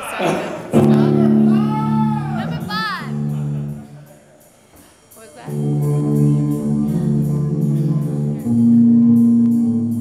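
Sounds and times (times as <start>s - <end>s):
electric guitar chords ringing: 0.7s - 4.0s, 5.4s - 10.0s.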